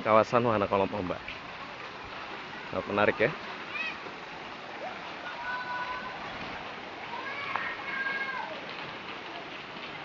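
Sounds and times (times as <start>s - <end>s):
water rushing and splashing: 0.0s - 10.0s.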